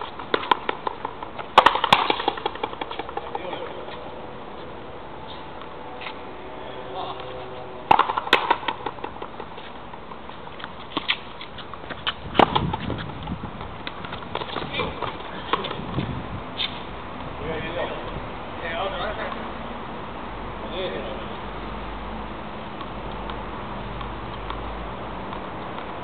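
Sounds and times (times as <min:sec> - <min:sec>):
rackets striking rubber ball: 0:00.0 - 0:03.6, 0:07.9 - 0:15.8.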